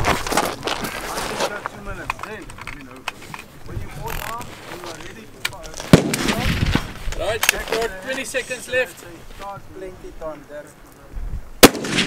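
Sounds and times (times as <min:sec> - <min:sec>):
rifle shot: 0:05.9 - 0:06.8, 0:11.6 - 0:12.0.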